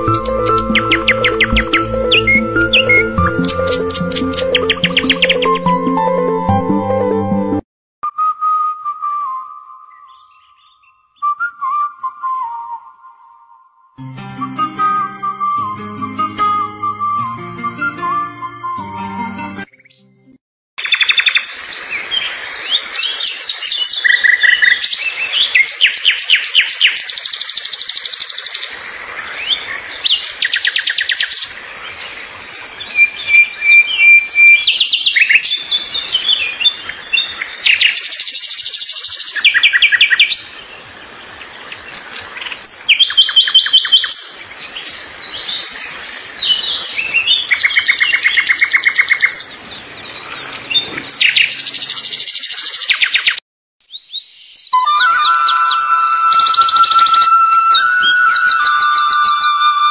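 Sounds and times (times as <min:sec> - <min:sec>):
birds singing and chirping: 0:00.0 - 0:05.8, 0:09.9 - 0:11.3, 0:20.8 - 0:40.7, 0:41.6 - 0:59.9.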